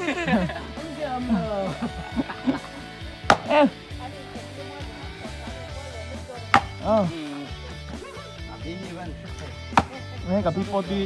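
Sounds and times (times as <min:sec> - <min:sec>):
background music: 0:00.0 - 0:11.0
sledgehammer striking wooden log: 0:03.3 - 0:03.6, 0:06.5 - 0:07.0, 0:09.8 - 0:10.0.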